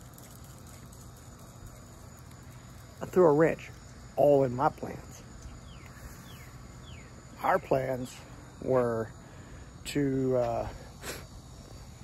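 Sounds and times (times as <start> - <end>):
crickets and insects droning: 0.0 - 12.0.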